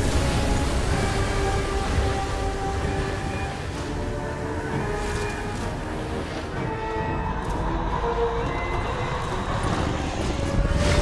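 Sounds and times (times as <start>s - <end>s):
tense orchestral film music: 0.0s - 11.0s.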